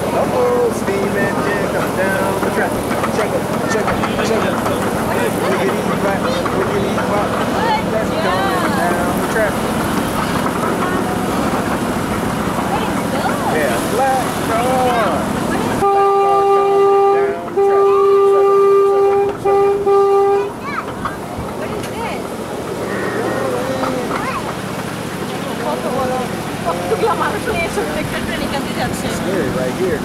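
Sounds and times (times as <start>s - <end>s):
people's voices: 0.0s - 30.0s
train running noise: 0.0s - 30.0s
train horn: 15.8s - 20.6s.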